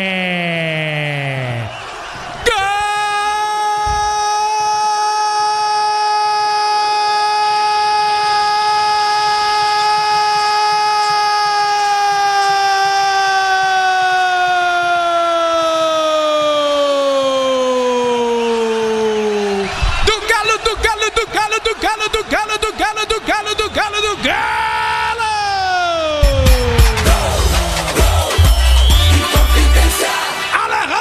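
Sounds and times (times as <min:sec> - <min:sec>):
commentator shouting goal: 0:16.4 - 0:28.0, 0:29.7 - 0:31.0.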